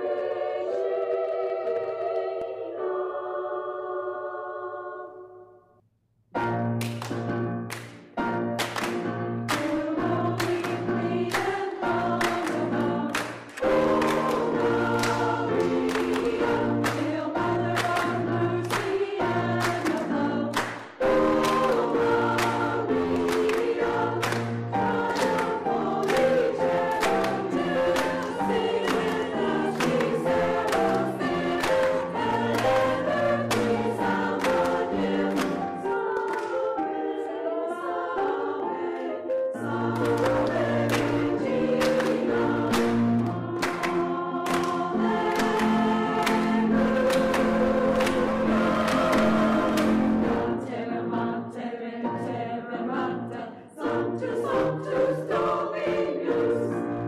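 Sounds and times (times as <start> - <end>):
choir singing with instruments: 0.0 - 5.6, 6.4 - 57.0.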